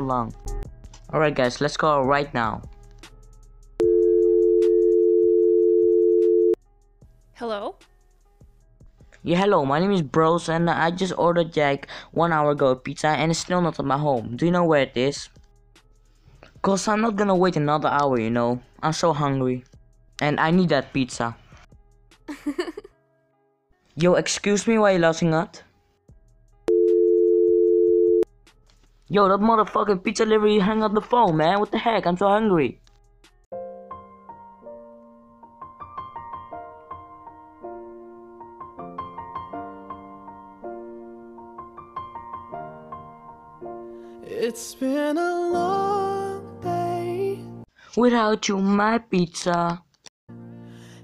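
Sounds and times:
two-pitch telephone line tone: 3.8s - 6.6s, 26.7s - 28.2s.

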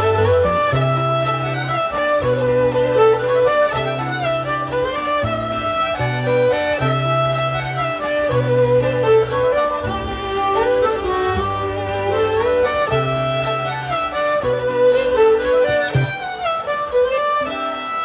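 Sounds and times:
fiddle melody: 0.0s - 18.0s
held bass notes: 0.0s - 18.0s.

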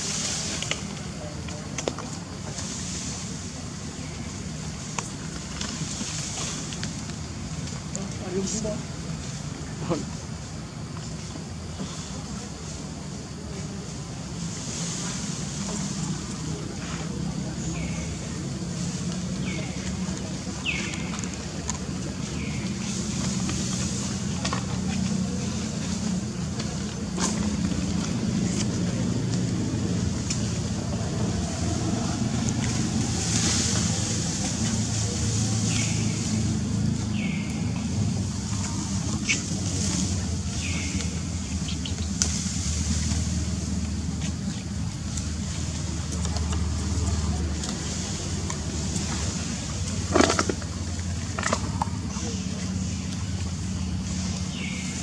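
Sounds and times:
engine rumbling: 0.0s - 55.0s.

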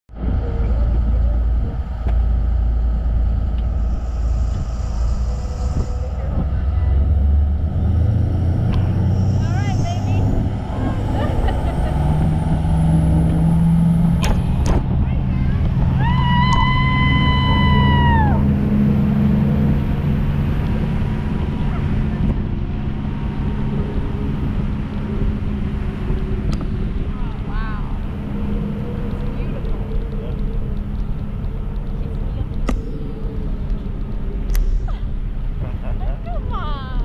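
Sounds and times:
boat engine running: 0.1s - 37.0s.

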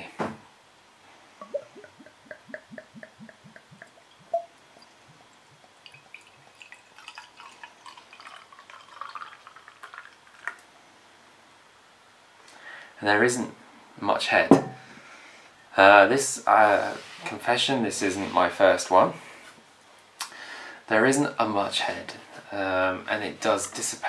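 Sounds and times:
beer glugging from bottle: 1.4s - 10.5s
liquid pouring into glass: 1.4s - 10.6s.

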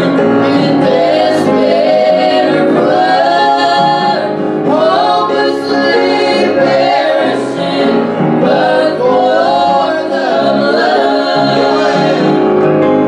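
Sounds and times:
voices singing a hymn: 0.0s - 12.8s
piano accompaniment: 0.0s - 13.0s.

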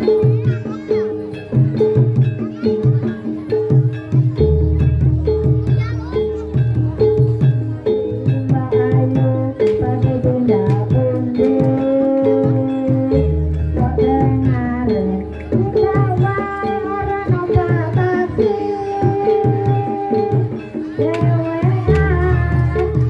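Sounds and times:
drums: 0.0s - 23.0s
held melodic line: 0.0s - 23.0s.

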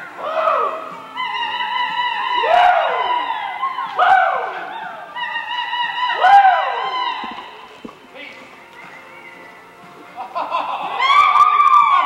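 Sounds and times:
spectator whooping: 0.2s - 7.5s, 10.7s - 12.0s.

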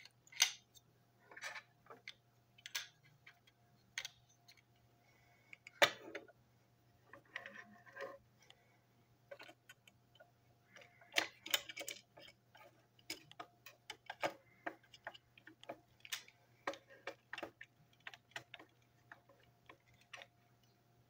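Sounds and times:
plastic parts clicking and tapping: 0.0s - 4.8s, 5.4s - 6.4s, 9.3s - 20.8s.

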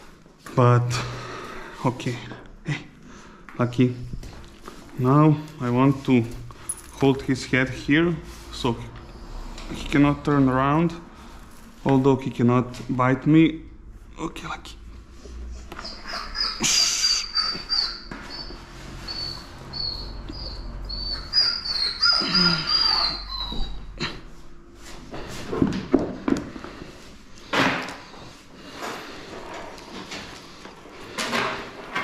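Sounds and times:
dog whining: 15.8s - 24.4s.

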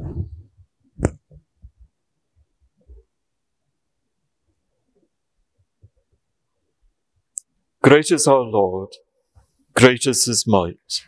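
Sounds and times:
soft low thumps: 0.0s - 3.1s.

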